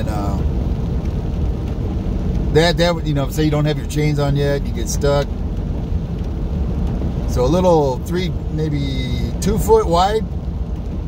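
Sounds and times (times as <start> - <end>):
tyres rolling on wet pavement: 0.0 - 11.0
vehicle engine: 0.0 - 11.0.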